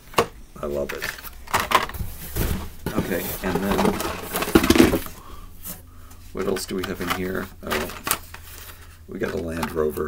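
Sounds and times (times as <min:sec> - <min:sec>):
toy car packs clattering and crinkling: 0:00.8 - 0:05.2, 0:06.4 - 0:10.0.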